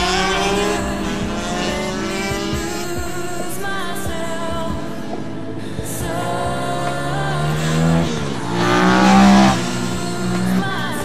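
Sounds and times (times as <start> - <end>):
motorcycle engine revving high: 0.0 - 11.0.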